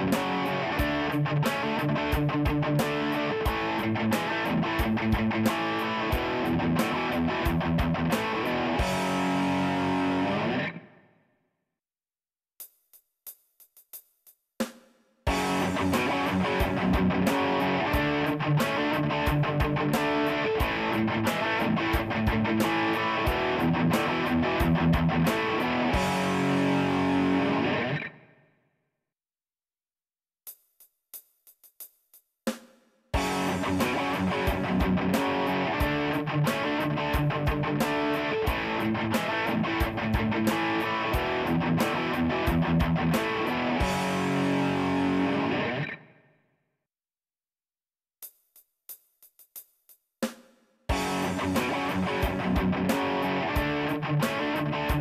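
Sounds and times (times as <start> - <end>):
drums: 0.0 - 10.8, 12.6 - 28.1, 30.4 - 45.9, 48.2 - 55.0
distorted electric guitar riff: 0.0 - 11.0, 15.3 - 28.4, 33.2 - 46.2, 50.9 - 55.0.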